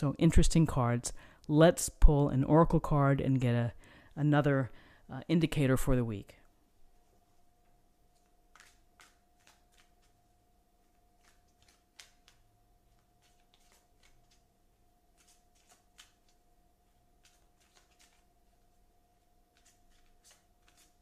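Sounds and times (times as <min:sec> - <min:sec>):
faint steady hum: 0:00.0 - 0:21.0
cards being shuffled: 0:08.1 - 0:10.2, 0:10.9 - 0:14.5, 0:15.1 - 0:16.4, 0:17.2 - 0:18.6, 0:19.5 - 0:21.0
sharp card snaps: 0:08.5 - 0:10.1, 0:11.2 - 0:12.4.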